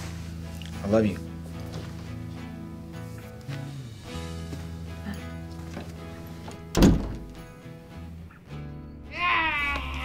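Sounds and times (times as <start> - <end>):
soft background music: 0.0 - 10.0
door shutting thunk: 6.7 - 7.4.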